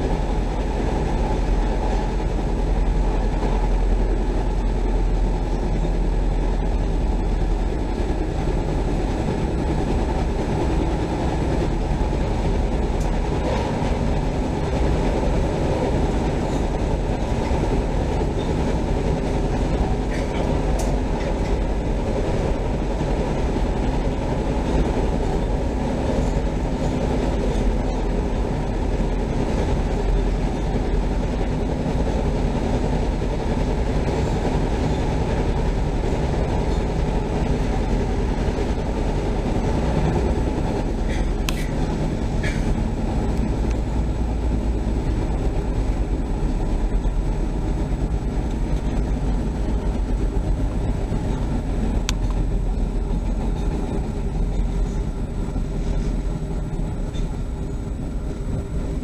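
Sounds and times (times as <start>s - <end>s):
train wheels rumbling on rail: 0.0s - 59.0s.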